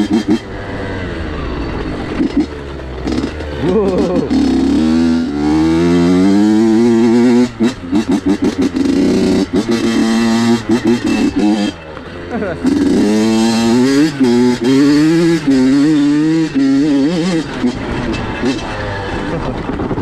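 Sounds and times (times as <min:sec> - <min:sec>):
two-stroke motorcycle engine: 0:00.0 - 0:20.0.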